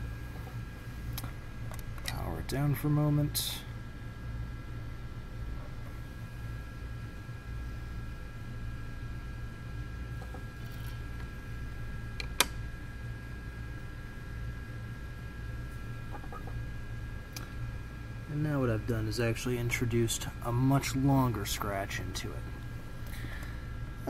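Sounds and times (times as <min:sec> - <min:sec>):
faint high whine: 0:00.0 - 0:24.0
steady low hum: 0:00.0 - 0:24.0.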